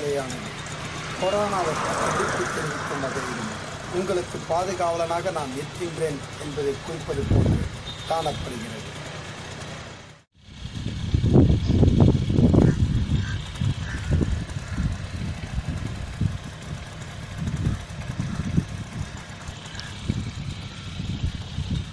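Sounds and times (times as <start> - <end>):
wind and road noise rumble: 0.0 - 21.9.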